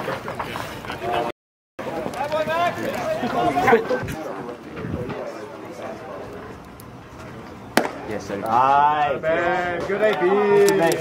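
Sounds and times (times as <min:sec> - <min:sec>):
baseball bat hitting ball: 0:07.8 - 0:08.1.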